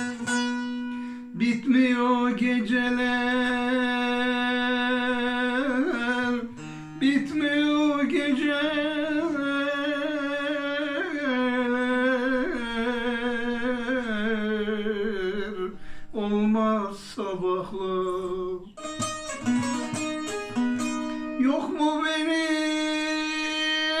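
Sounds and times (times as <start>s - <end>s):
plucked long-necked lute: 0.0s - 15.7s, 17.7s - 24.0s.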